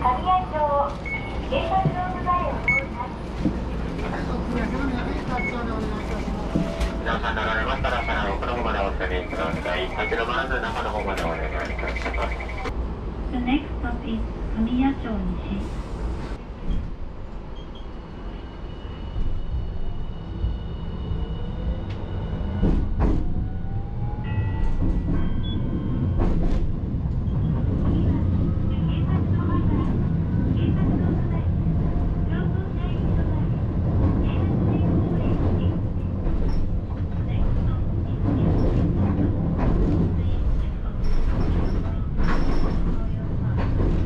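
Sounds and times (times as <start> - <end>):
streetcar rumbling on rails: 0.0 - 44.0.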